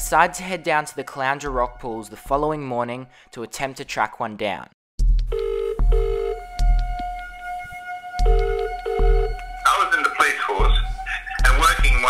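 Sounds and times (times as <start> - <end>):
background music with bass pulse: 5.0 - 12.0
telephone ringback tone: 5.3 - 6.4, 8.3 - 9.3.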